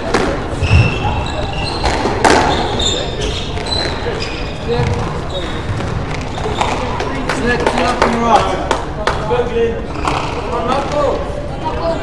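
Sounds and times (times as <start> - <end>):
indistinct voices in a hall: 0.0 - 12.0.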